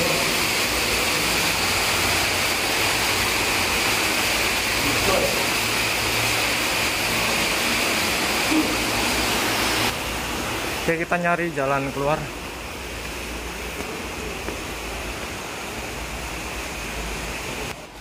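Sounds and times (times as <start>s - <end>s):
rush of flowing water: 0.0s - 18.0s.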